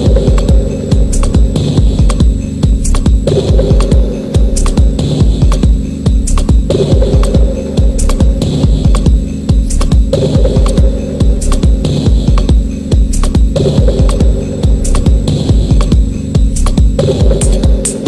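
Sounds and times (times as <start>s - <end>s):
humming bass drone: 0.0s - 18.0s
pulsing kick drum: 0.0s - 18.0s
techno music: 0.0s - 18.0s
ticking hi-hats: 0.0s - 18.0s.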